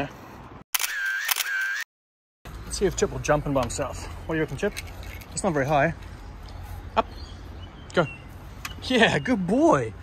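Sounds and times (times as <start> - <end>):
camera shutter clicks: 0.8 - 1.8
whirring film advance: 0.8 - 1.8.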